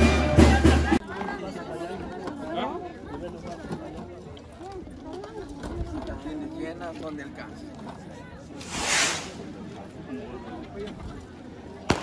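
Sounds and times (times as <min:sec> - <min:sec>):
faint crowd chatter: 0:00.0 - 0:12.0
rushing hiss: 0:08.6 - 0:09.4.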